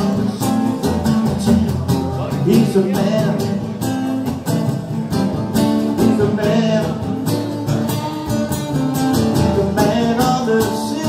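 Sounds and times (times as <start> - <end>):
guitar strumming: 0.0 - 11.0.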